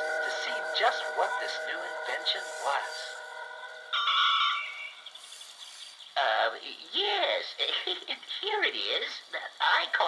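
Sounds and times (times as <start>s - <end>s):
high multi-tone note from toy speaker: 0.0s - 5.1s
faint hiss: 4.7s - 10.0s.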